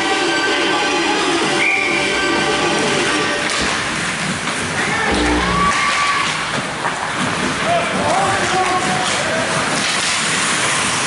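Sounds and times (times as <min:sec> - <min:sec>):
steady hall noise: 0:02.9 - 0:07.2.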